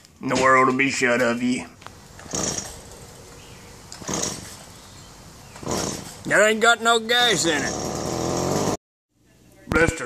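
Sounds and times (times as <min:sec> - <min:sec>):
trimmer engine turning over: 0:01.9 - 0:04.8, 0:05.6 - 0:06.3, 0:07.4 - 0:08.8
recoil cord rasping: 0:02.1 - 0:03.1, 0:03.9 - 0:04.7.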